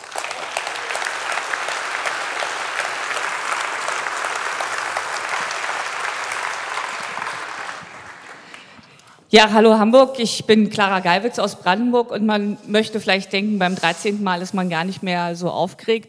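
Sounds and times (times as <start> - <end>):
large audience applauding: 0.0 - 9.0.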